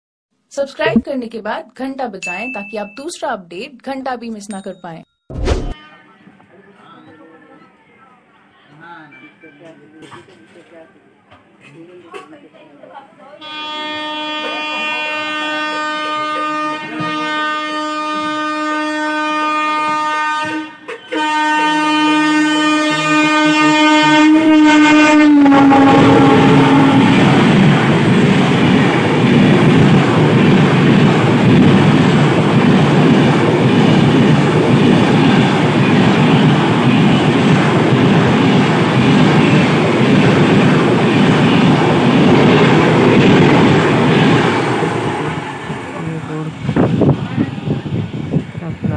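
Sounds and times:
passing train rush and clatter: 5.7s - 48.9s
train horn: 5.8s - 6.4s, 13.4s - 27.5s, 44.5s - 46.3s.

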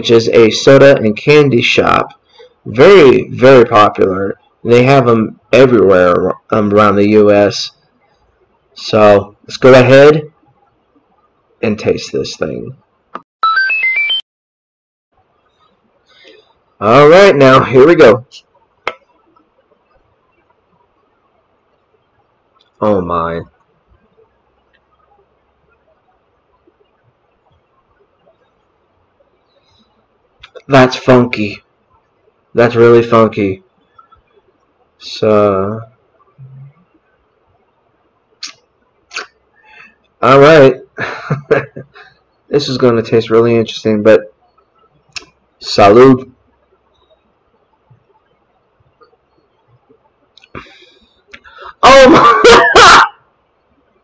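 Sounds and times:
electronic beeping tune: 13.4s - 14.2s.

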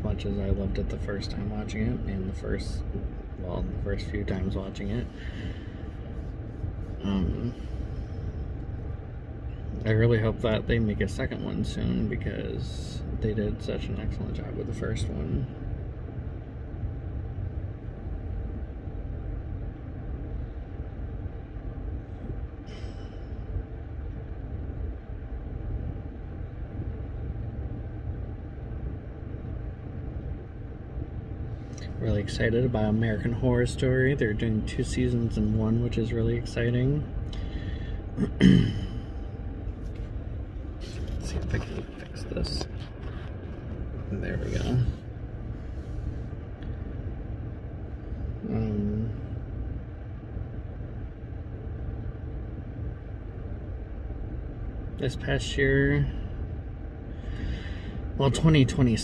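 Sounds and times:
low rumble inside car cabin: 0.0s - 59.0s.

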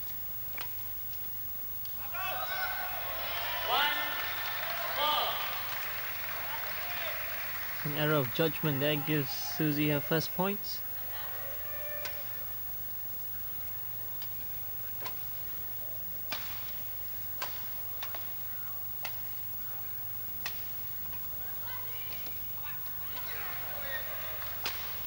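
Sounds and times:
low steady hum: 0.0s - 25.0s
crowd noise: 1.9s - 25.0s
rackets striking shuttlecock: 16.2s - 19.4s.

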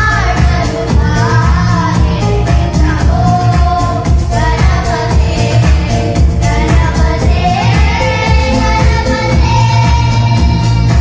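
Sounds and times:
backing track with bass beat: 0.0s - 11.0s
children singing into microphones: 0.0s - 11.0s.

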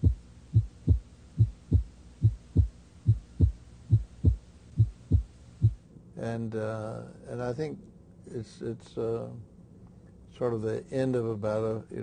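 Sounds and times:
heartbeat thumps: 0.0s - 5.8s.

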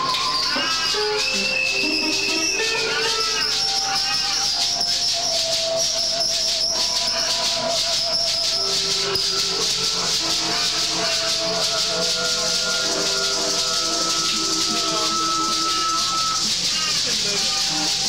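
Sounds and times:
rattling shaker rhythm: 0.0s - 18.0s.

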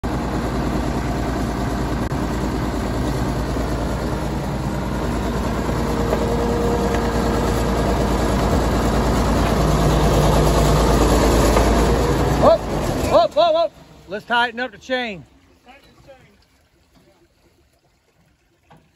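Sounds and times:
diesel engine of earthmover: 0.0s - 14.5s.

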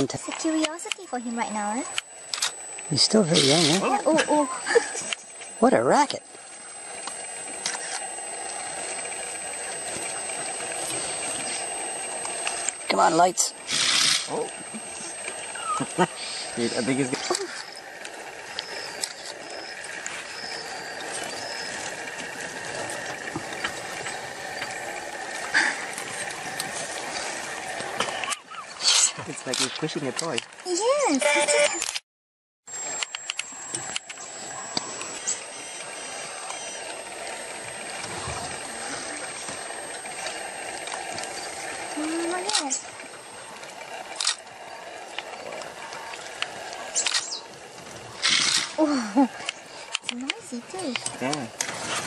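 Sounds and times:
porcupine rattling quills: 33.3s - 52.0s.

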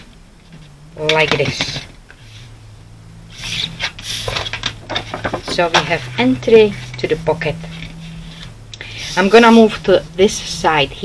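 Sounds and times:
faint low hum: 0.0s - 11.0s
paper scraping on cutting mat: 3.3s - 4.7s.

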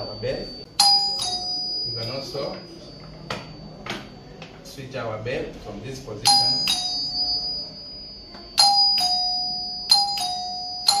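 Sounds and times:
doorbell ding-dong chime: 0.0s - 4.6s, 6.2s - 11.0s.

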